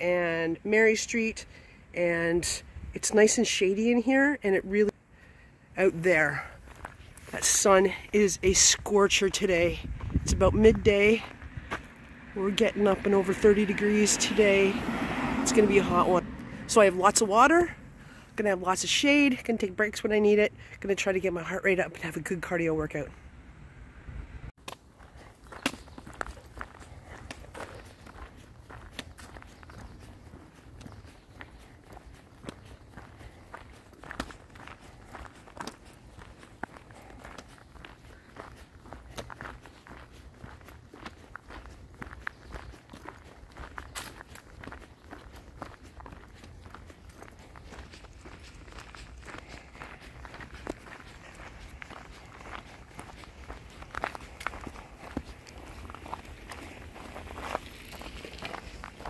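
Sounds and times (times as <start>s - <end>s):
footsteps crunching on gravel: 5.8s - 16.2s, 24.6s - 59.0s.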